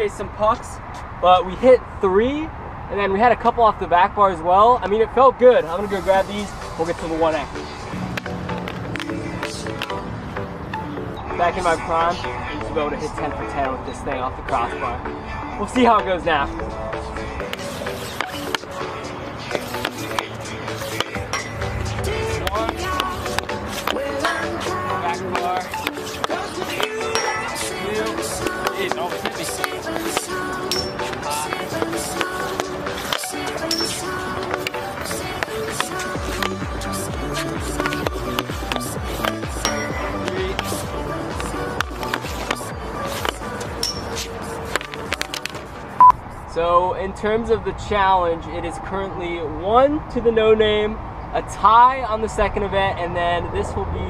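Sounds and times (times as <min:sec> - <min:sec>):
background music with steady beat: 0:05.5 - 0:46.4
pulsing bass: 0:20.2 - 0:25.5, 0:36.1 - 0:44.6.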